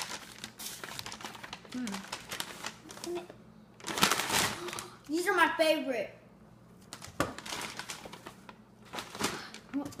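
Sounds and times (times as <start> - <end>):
paper bag crinkling: 0.0 - 5.0, 6.9 - 9.8.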